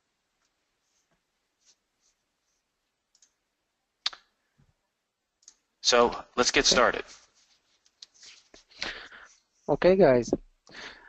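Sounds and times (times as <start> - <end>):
faint clicks: 2.8 - 3.4, 5.4 - 6.2.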